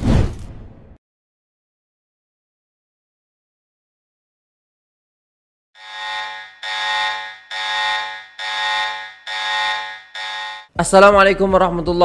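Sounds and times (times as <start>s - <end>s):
electronic alarm buzzer: 5.8s - 10.7s.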